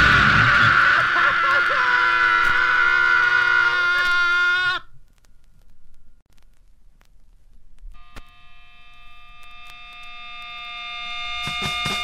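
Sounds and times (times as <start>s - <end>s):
faint amplifier hum: 3.7s - 12.0s
electric guitar drone: 8.0s - 12.0s.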